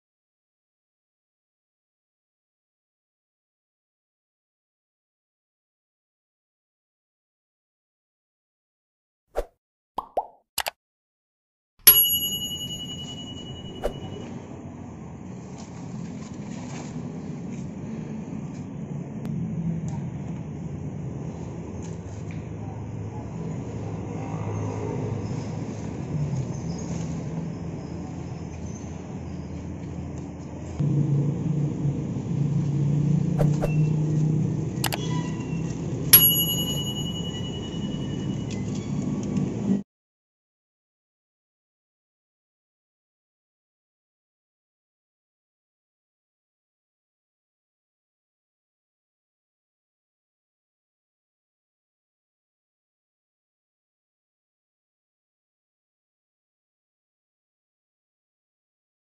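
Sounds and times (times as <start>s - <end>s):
bright bell-like ding: 11.9s - 14.3s, 36.2s - 38.6s
ringing metallic clink: 11.9s - 14.3s, 36.2s - 38.6s
low outdoor background noise: 14.2s - 36.1s
low vehicle rumble: 14.3s - 36.1s.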